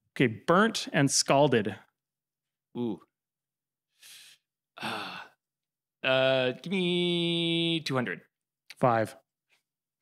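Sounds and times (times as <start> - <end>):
man breathing in: 3.9 - 5.4
breathy sigh: 4.0 - 5.5.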